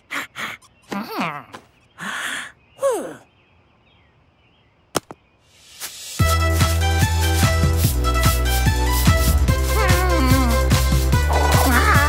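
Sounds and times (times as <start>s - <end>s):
cartoon vocal sliding down: 9.8s - 10.7s, 11.3s - 12.0s.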